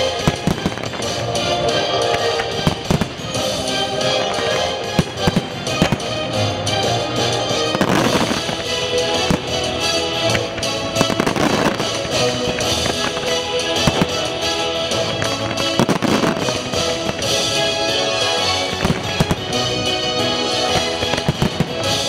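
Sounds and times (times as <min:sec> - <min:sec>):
fireworks bursting: 0:00.0 - 0:22.0
orchestral show music: 0:00.0 - 0:22.0.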